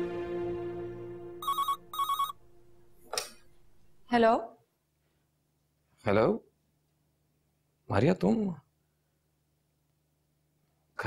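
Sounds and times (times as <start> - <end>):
telephone ringing: 1.4 - 2.4.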